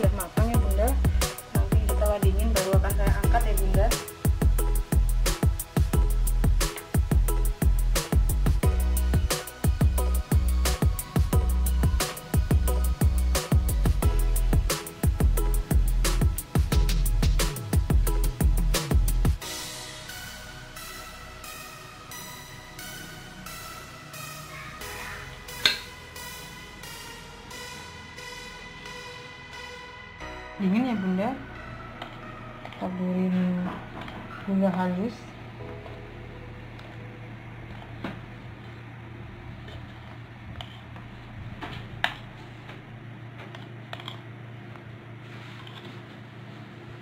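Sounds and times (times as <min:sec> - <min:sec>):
instrumental background music: 0:00.0 - 0:39.2
spoon clicking on plate: 0:25.6 - 0:25.9
steady low hum: 0:31.4 - 0:47.0.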